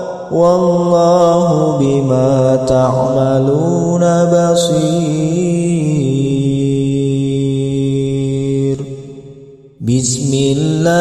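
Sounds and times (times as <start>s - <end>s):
person chanting melodically: 0.0s - 11.0s.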